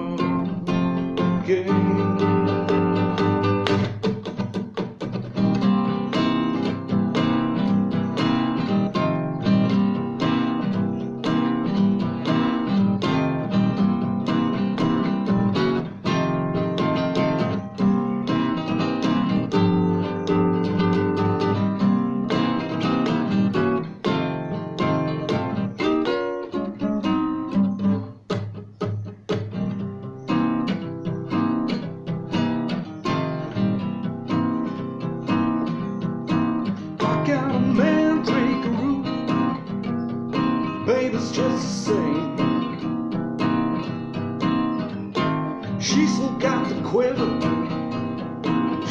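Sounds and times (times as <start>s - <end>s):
acoustic guitar strumming chords: 0.0s - 48.9s.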